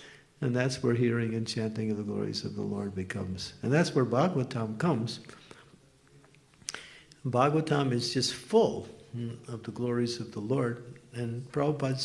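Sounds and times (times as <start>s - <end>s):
man speaking: 0.4s - 5.3s, 7.2s - 12.0s.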